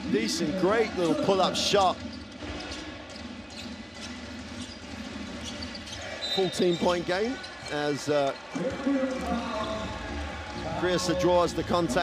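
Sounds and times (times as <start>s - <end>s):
arena crowd noise: 0.0s - 3.6s, 4.9s - 12.0s.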